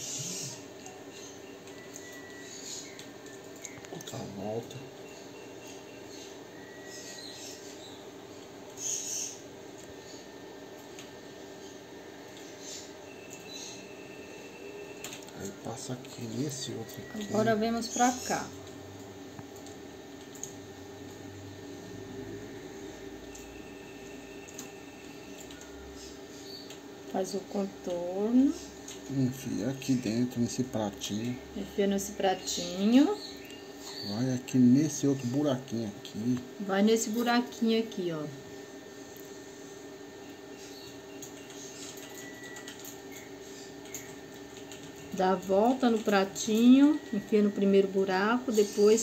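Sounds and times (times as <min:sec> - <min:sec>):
quiet background hum: 0:00.0 - 0:49.0.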